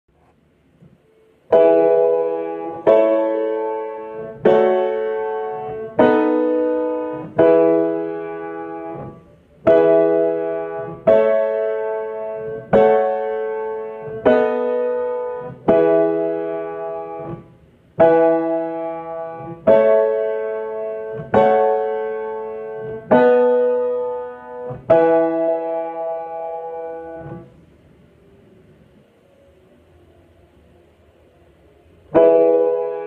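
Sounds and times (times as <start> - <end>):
piano playing slow chords: 1.0 - 33.0.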